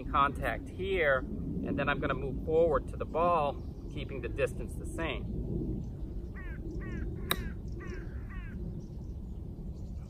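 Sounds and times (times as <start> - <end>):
crow cawing: 6.4 - 8.6
golf club striking ball: 7.2 - 7.6.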